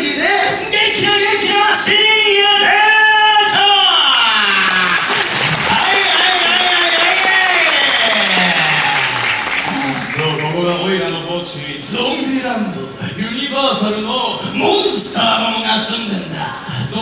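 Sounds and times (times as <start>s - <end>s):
audience applause and cheering: 4.1s - 10.7s.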